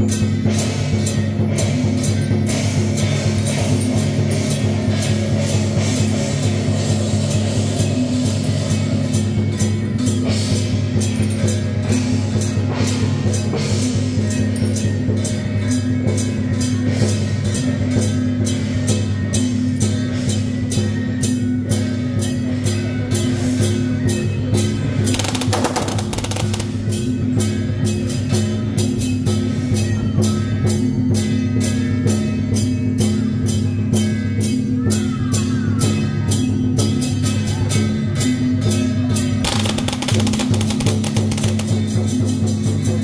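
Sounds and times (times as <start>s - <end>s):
drums beating: 23.8s - 29.6s, 39.3s - 43.0s.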